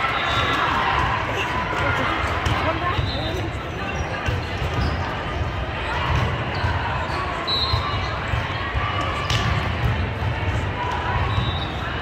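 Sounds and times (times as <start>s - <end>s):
murmur of many voices: 0.0s - 12.0s.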